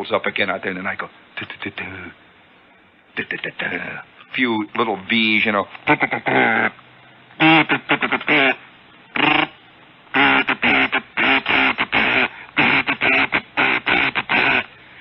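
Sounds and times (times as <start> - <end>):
man vocally imitating morse code: 3.1 - 4.1, 4.7 - 6.8, 7.4 - 14.9.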